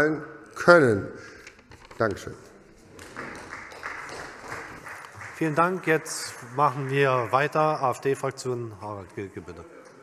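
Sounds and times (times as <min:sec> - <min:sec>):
sparse applause: 0:03.0 - 0:08.1.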